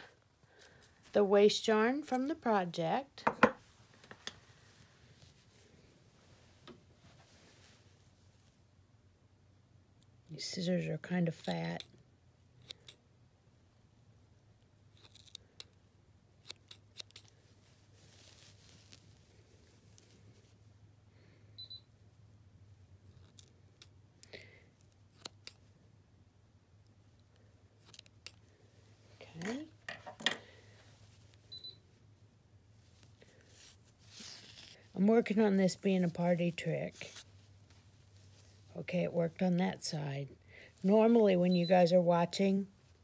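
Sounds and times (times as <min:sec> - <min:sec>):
small scissors snipping yarn: 0:12.6 - 0:13.0, 0:14.9 - 0:15.8, 0:16.4 - 0:17.4, 0:23.1 - 0:25.6, 0:27.8 - 0:28.5.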